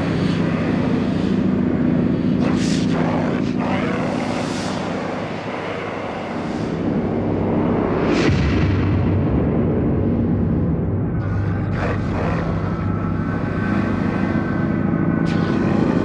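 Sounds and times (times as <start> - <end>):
dense wash of noise: 0.0 - 16.0
rumbling low hum: 0.0 - 16.0
deep low throb: 5.4 - 16.0.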